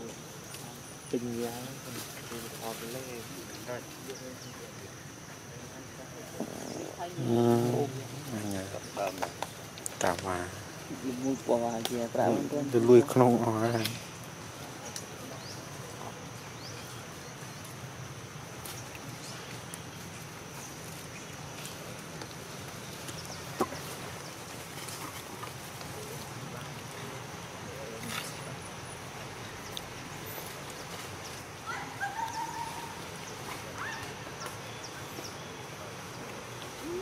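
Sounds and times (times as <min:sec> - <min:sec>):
insects droning: 0:00.0 - 0:37.0
monkey calls: 0:31.6 - 0:34.5.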